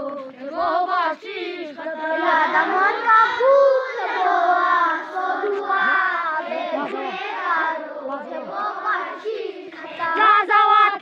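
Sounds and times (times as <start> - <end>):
children singing in unison: 0.0 - 10.3.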